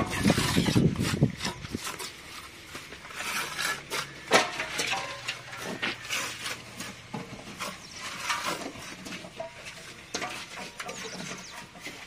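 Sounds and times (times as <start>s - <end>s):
trowel scraping mortar: 0.0s - 12.0s.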